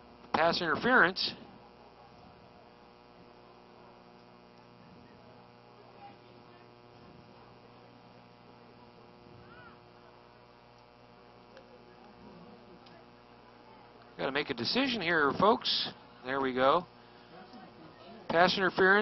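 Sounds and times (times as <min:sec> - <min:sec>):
steady electrical hum: 0:00.0 - 0:19.0.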